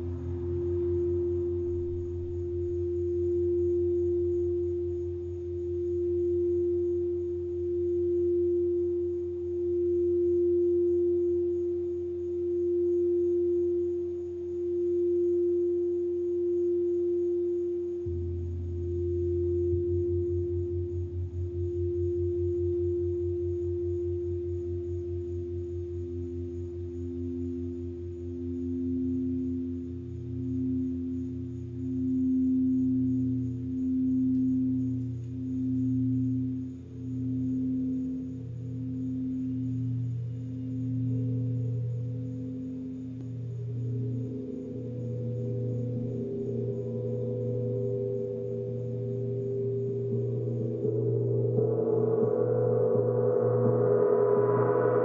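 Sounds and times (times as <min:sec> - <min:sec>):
deeper hum: 0:00.0 - 0:07.8, 0:18.0 - 0:55.0
lower bowl tone: 0:00.0 - 0:55.0
singing bowls ringing: 0:00.0 - 0:55.0.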